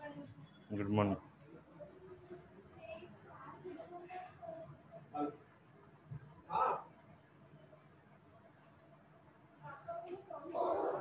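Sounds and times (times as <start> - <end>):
faint background speech: 0.0 - 11.0.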